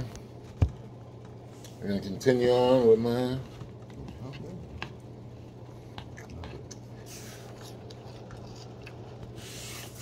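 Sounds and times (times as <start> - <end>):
steady low hum: 0.0 - 10.0
person chewing cereal: 3.8 - 10.0.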